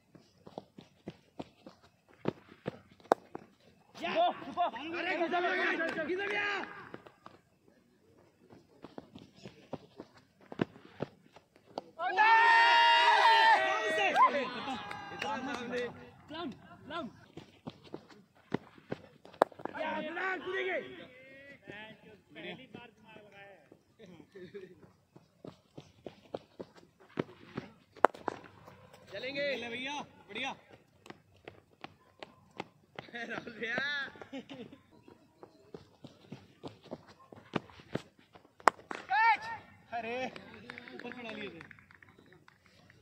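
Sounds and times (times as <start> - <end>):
footsteps on dirt: 0.0 - 4.5, 6.6 - 12.0, 17.0 - 20.1, 24.6 - 29.2, 30.6 - 39.0
players shouting: 12.0 - 17.0, 19.7 - 21.6.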